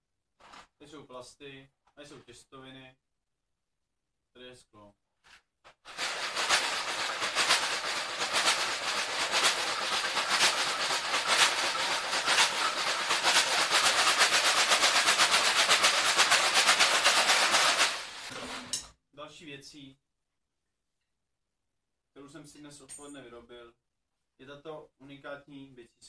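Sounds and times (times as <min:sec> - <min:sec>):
plastic bottle shaker rattling: 0:05.7 - 0:18.8.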